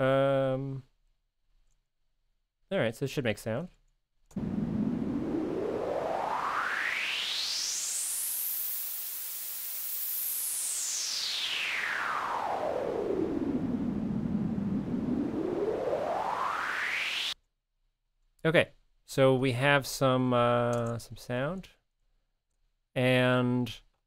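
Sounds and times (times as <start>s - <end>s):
filtered noise sweeping in pitch: 4.4s - 17.4s.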